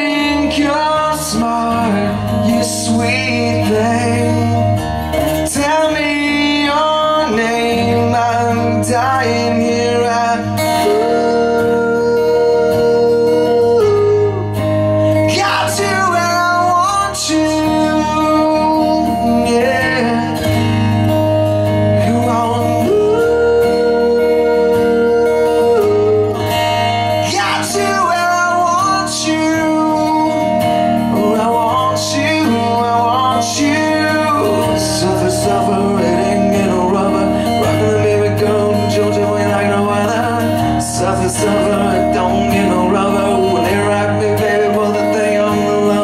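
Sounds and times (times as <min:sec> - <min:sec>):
man singing: 0:00.0 - 0:46.0
strummed acoustic guitar: 0:00.0 - 0:46.0.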